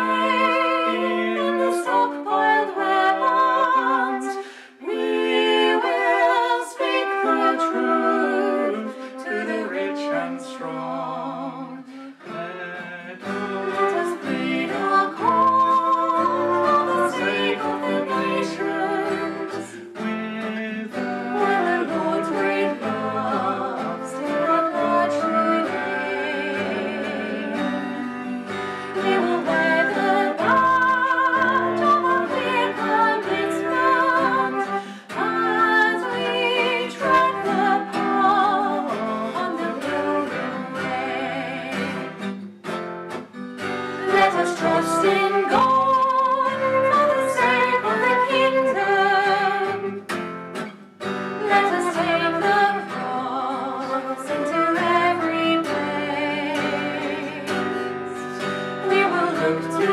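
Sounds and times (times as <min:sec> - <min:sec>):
woman and man singing a hymn: 0:00.0 - 0:42.3, 0:44.0 - 0:49.9, 0:51.4 - 0:59.9
flute: 0:00.0 - 0:42.8, 0:43.6 - 0:59.9
strummed acoustic guitar: 0:00.0 - 0:59.9.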